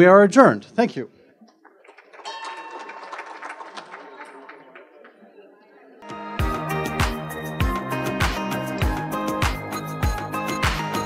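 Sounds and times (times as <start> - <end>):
bell struck repeatedly: 2.3 - 3.2.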